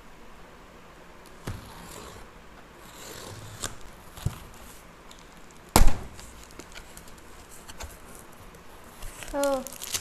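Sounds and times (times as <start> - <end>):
scissors cutting packing tape: 9.2 - 10.0.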